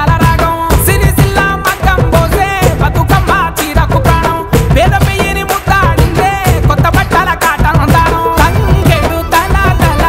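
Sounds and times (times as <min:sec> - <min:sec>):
person singing: 0:00.0 - 0:10.0
steady drum beat: 0:00.0 - 0:10.0.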